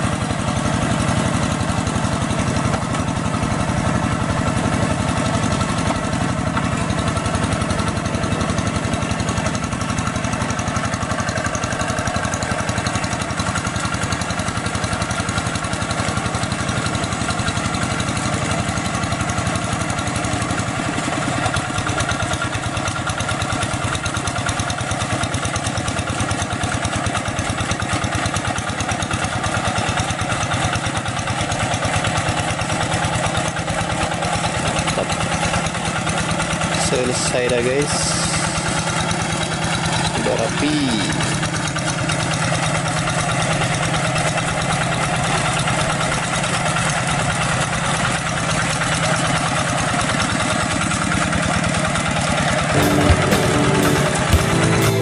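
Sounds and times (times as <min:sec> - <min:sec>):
hand tractor diesel engine running: 0:00.0 - 0:55.0.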